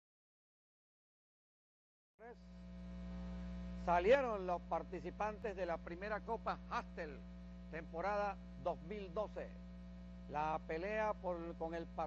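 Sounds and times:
electrical mains hum: 2.2 - 12.0.

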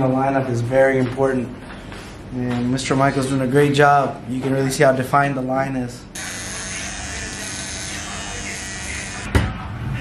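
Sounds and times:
electric hair clipper buzzing: 6.2 - 9.3.

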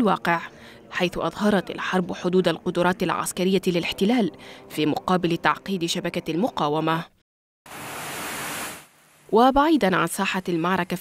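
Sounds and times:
steady hiss: 7.7 - 9.3.

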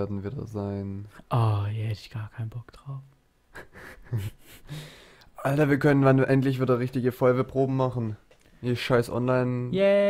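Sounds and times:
person breathing: 3.9 - 5.4.

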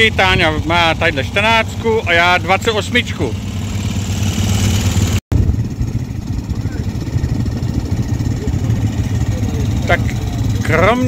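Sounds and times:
quad bike engines idling: 0.0 - 11.0.

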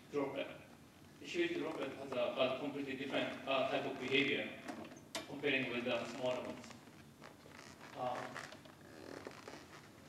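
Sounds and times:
man speaking: 0.0 - 4.6, 5.3 - 6.8, 8.0 - 8.5.

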